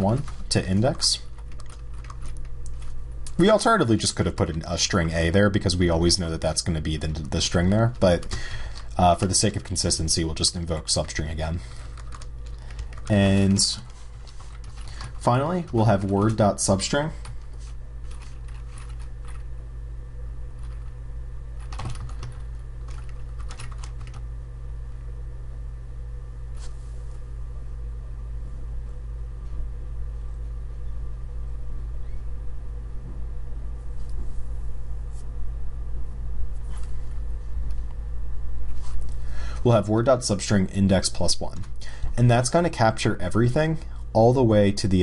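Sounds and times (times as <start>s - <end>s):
steady low hum: 0.0s - 45.0s
keyboard typing: 1.4s - 2.9s, 11.8s - 16.5s, 18.0s - 19.4s, 21.6s - 24.2s.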